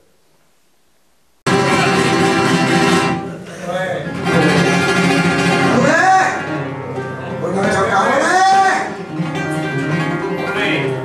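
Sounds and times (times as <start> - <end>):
flamenco guitar: 1.4 - 11.0.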